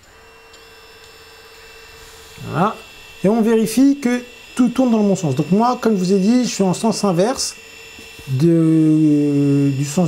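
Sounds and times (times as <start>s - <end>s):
drone motors whining: 0.0s - 10.0s.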